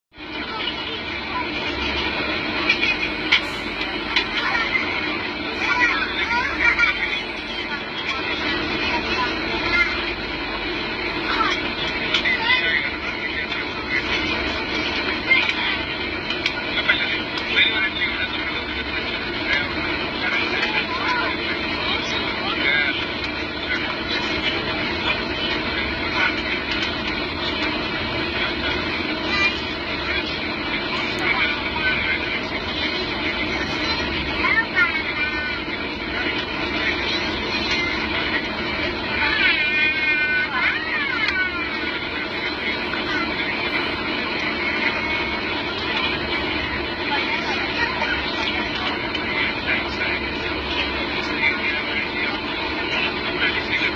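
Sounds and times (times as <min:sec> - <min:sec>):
jet engine drone: 0:00.1 - 0:53.9
voices in cabin: 0:00.1 - 0:53.9
airflow: 0:00.8 - 0:17.4.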